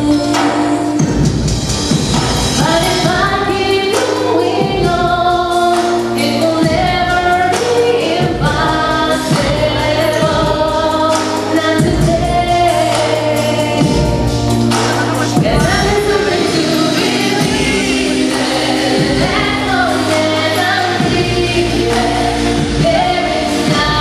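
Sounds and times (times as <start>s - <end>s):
woman singing pop song: 0.0s - 1.4s, 2.6s - 24.0s
backing track with steady beat: 0.0s - 24.0s.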